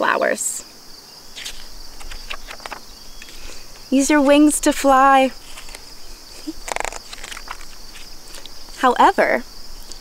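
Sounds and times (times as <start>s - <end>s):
crickets chirring: 0.0s - 10.0s
paper pages turning: 1.4s - 3.6s, 4.2s - 8.6s.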